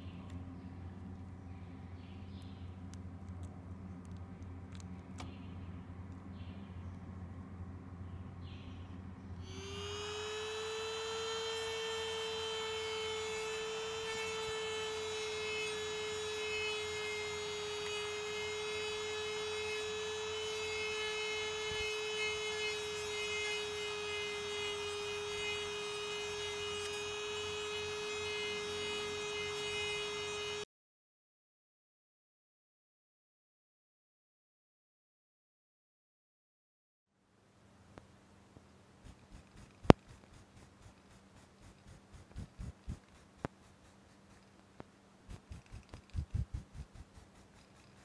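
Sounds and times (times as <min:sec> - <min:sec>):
rotary tool whining: 0:09.4 - 0:30.7, 0:39.0 - 0:44.7, 0:45.3 - 0:48.0.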